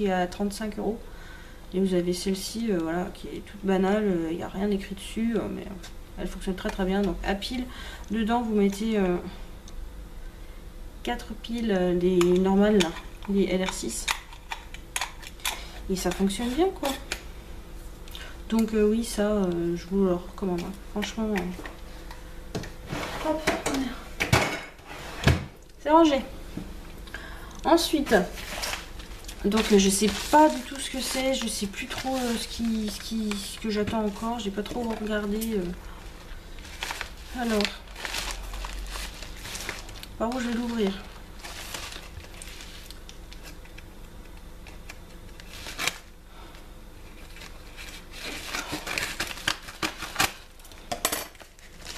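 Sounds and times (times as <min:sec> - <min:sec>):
packaging rustling and crinkling: 0:28.0 - 0:46.1, 0:47.0 - 0:51.9.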